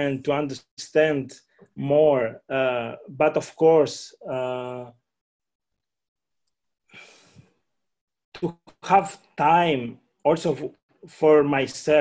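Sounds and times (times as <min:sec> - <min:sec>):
man breathing: 0:06.8 - 0:07.7.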